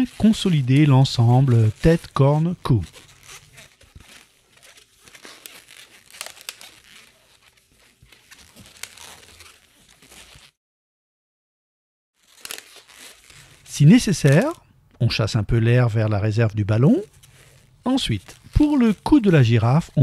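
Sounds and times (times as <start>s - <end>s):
balloon rubbing and squeaking: 0.0s - 10.6s, 12.2s - 14.6s, 16.8s - 20.0s.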